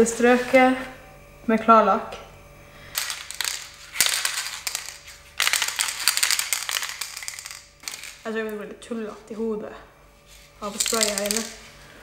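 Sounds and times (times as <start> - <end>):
aerosol can ball rattling: 3.0 - 8.3, 10.6 - 11.6.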